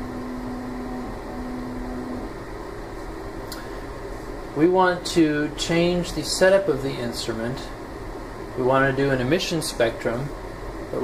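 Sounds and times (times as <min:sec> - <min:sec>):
steady low tone: 0:00.0 - 0:02.3
fan hum of equipment and ventilation: 0:00.0 - 0:11.0.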